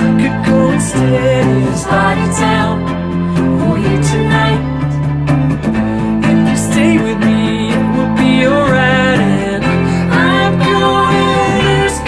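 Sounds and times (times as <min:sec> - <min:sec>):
electric guitar: 0:00.0 - 0:12.0
synth: 0:00.0 - 0:12.0
violin: 0:00.0 - 0:12.0.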